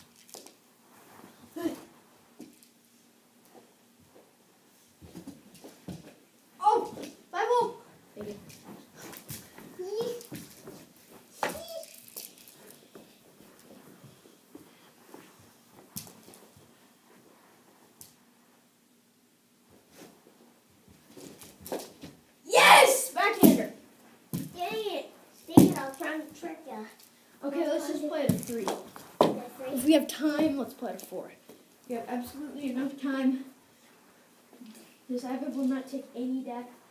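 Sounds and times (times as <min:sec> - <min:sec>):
light knocks of hockey sticks: 0:08.2 - 0:13.7
children shouting and calling: 0:11.4 - 0:12.0, 0:22.5 - 0:23.6.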